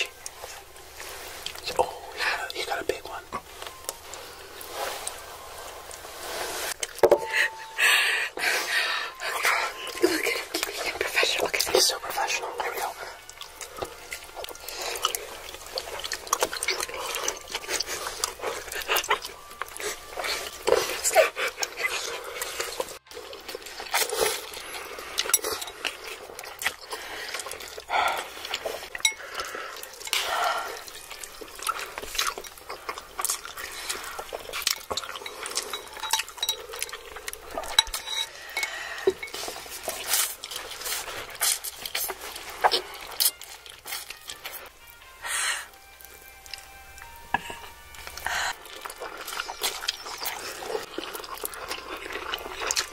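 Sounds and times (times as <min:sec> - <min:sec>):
wet chewing and slurping: 0:00.0 - 0:52.9
chopsticks clicking against bowls: 0:34.4 - 0:39.4.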